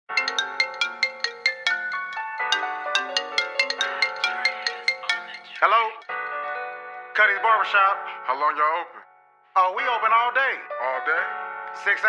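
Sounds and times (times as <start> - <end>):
phone ringtone chiming melody: 0.1 - 6.5.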